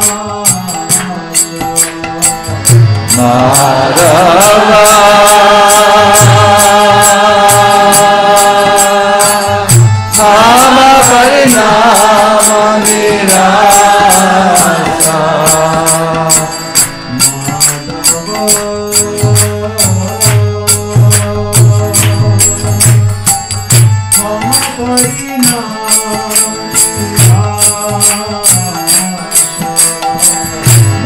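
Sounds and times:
man chanting: 0.0s - 31.0s
small jingling percussion: 0.0s - 31.0s
low hand drum: 17.2s - 29.0s.

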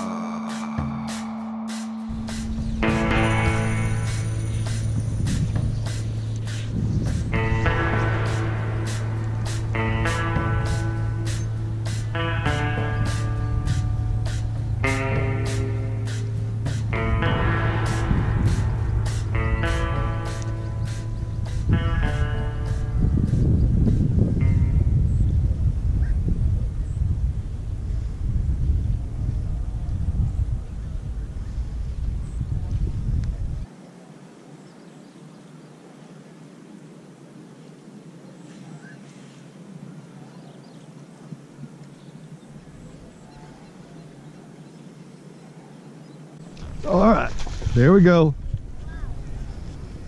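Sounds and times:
faint outdoor ambience: 0.0s - 50.0s
wind buffeting microphone: 0.7s - 33.7s, 36.5s - 50.0s.

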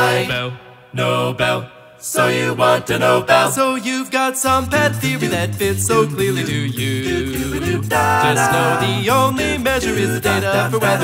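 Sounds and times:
a cappella voices singing chords: 0.0s - 11.0s.

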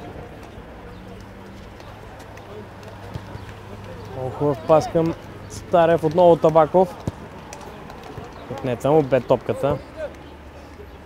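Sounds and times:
distant players' voices: 0.0s - 11.0s
feet tapping ball: 0.3s - 10.3s.

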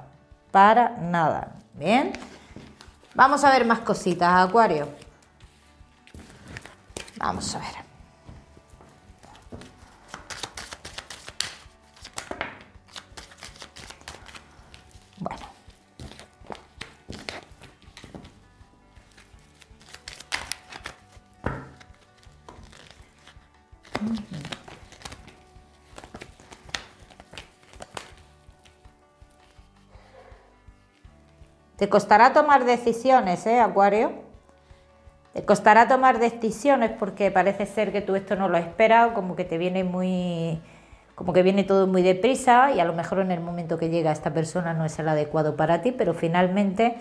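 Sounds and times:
soft background music: 0.0s - 47.0s
cards being shuffled and slapped: 2.1s - 3.2s, 4.8s - 7.2s, 8.3s - 29.7s.

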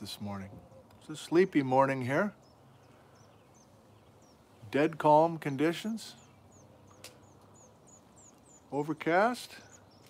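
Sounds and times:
small bird chirping: 0.1s - 10.0s.

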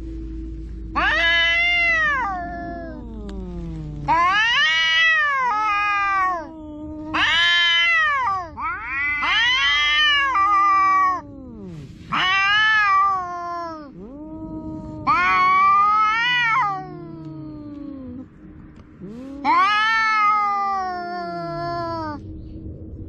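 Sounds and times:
low steady note: 0.0s - 7.2s, 7.9s - 12.2s, 12.9s - 23.0s
cats yowling: 0.9s - 22.2s.

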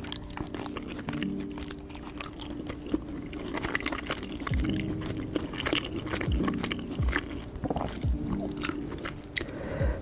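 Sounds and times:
wet chewing sounds: 0.0s - 10.0s
soft low thumps: 6.3s - 8.5s, 9.8s - 10.0s.

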